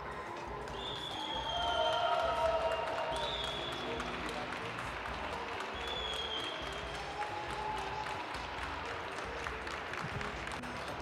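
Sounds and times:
audience applauding: 0.0s - 11.0s
faint music: 0.0s - 11.0s.

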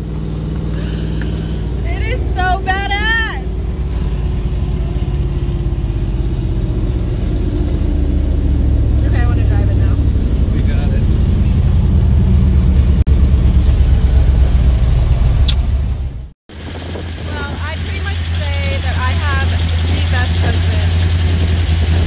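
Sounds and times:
truck engine and road noise: 0.0s - 22.0s
woman's excited high-pitched voice: 1.9s - 3.5s.

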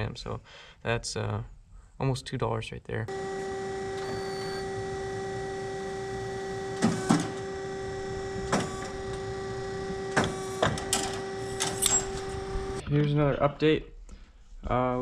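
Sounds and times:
hydraulic machine whine: 3.1s - 12.8s
machine knocks and clicks: 6.6s - 12.8s.

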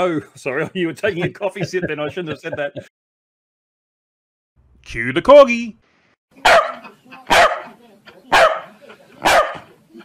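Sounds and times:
dog barking: 6.4s - 9.7s.

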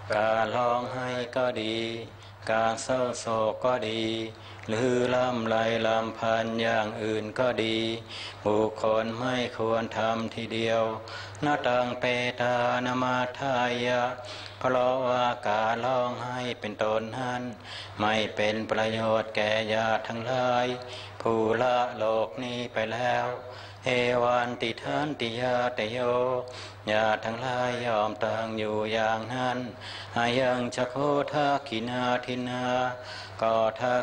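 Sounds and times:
monks chanting together: 0.1s - 34.0s.

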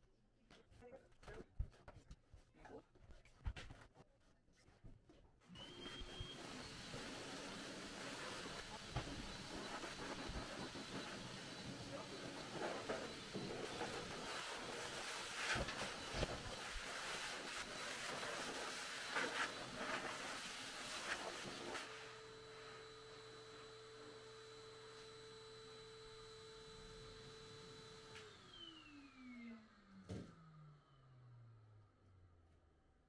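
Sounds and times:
blow dryer rushing air: 5.5s - 30.6s
motor spinning down: 28.2s - 31.8s.

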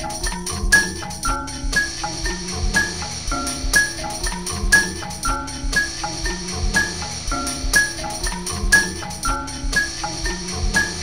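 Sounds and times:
low thumping beat: 0.0s - 11.0s
repeating high notes: 0.0s - 11.0s.

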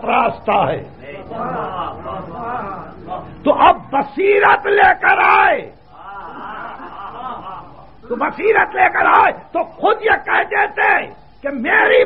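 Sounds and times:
lecturer speaking: 0.0s - 5.7s, 7.2s - 12.0s
audience murmuring: 1.0s - 3.6s
audience chuckling: 6.0s - 8.0s.

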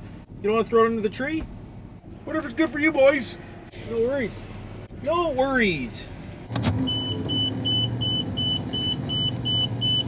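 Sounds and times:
engine running hum: 3.2s - 10.0s
electronic warning chime beeping: 6.9s - 10.0s.

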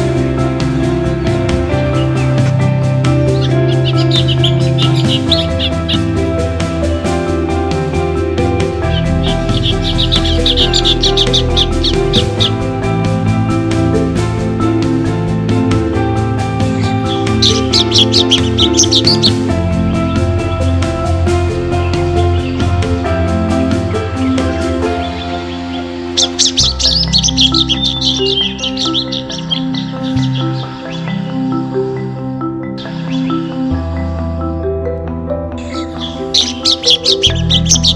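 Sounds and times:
music with steady beat: 0.0s - 37.9s
bird chirping: 0.6s - 12.8s, 16.4s - 23.0s, 23.9s - 34.7s, 35.6s - 37.9s.

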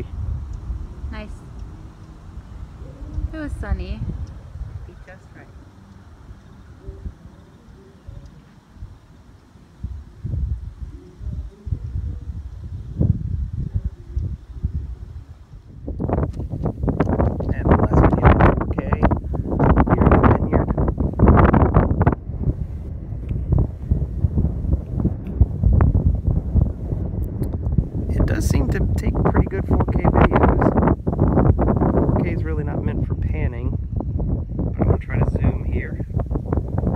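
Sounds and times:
wind buffeting microphone: 0.0s - 36.9s.

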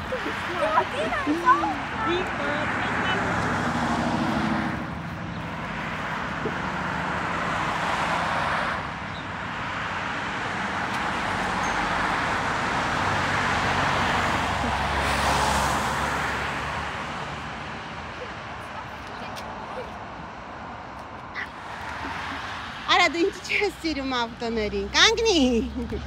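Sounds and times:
cars passing: 0.0s - 26.0s.

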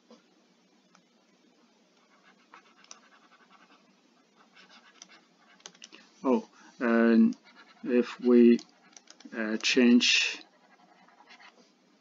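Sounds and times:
stylus scratching on tablet screen: 2.0s - 6.0s, 6.8s - 11.8s
person speaking: 5.9s - 11.4s.

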